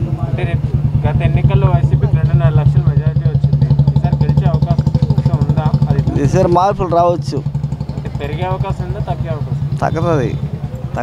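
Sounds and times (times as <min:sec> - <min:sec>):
man talking: 0:00.0 - 0:11.0
small engine idling: 0:00.0 - 0:11.0.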